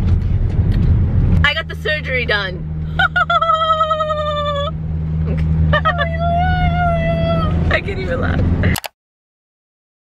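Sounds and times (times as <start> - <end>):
low car hum: 0.0 - 8.8.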